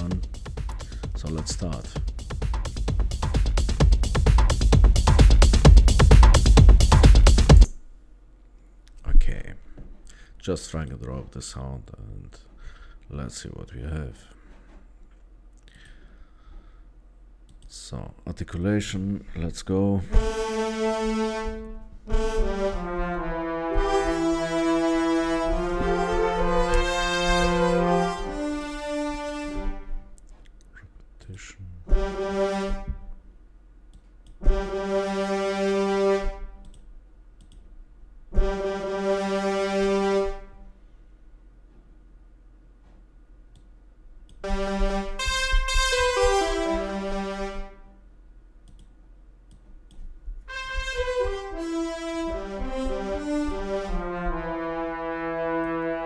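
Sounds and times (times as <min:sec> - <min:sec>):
brass ensemble playing chords: 0:00.0 - 0:07.7, 0:20.0 - 0:30.2, 0:31.8 - 0:33.2, 0:34.4 - 0:36.7, 0:38.4 - 0:40.8, 0:44.4 - 0:48.0, 0:50.5 - 0:56.0.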